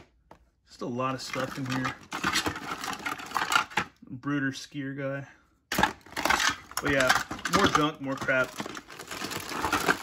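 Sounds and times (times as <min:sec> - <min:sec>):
plastic toys clattering: 0:01.1 - 0:04.0, 0:05.7 - 0:10.0.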